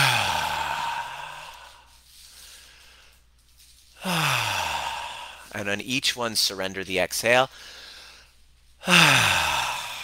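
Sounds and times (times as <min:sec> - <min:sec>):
man sighing: 0:00.0 - 0:01.9, 0:04.0 - 0:05.5, 0:08.8 - 0:10.0.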